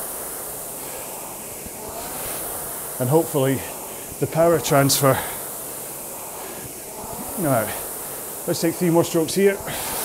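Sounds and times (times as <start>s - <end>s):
rowing machine flywheel whirring: 0.0s - 10.0s.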